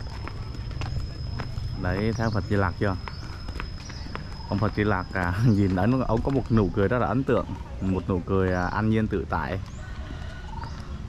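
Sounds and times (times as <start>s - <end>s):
footsteps on brick path: 0.0s - 11.0s.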